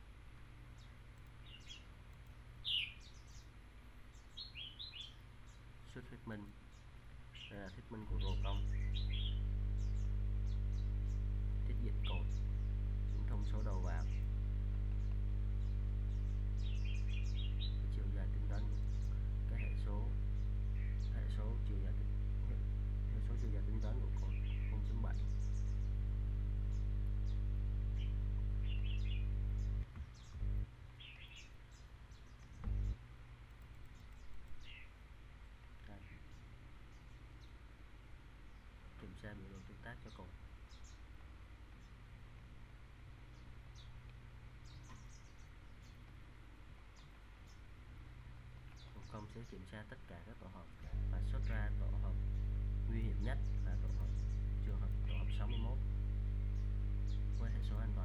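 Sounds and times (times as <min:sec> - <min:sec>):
low steady hum: 0:00.0 - 0:58.0
bird chirps: 0:00.7 - 0:33.0, 0:33.6 - 0:35.0, 0:38.4 - 0:41.1, 0:43.3 - 0:44.0, 0:44.6 - 0:46.1, 0:46.9 - 0:47.8, 0:48.6 - 0:49.8, 0:50.8 - 0:58.0.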